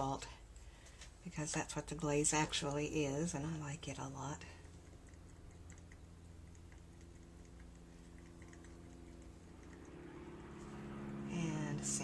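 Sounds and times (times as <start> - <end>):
low room hum: 0.0 - 12.0
brush ticking and scratching on paper: 4.4 - 11.0.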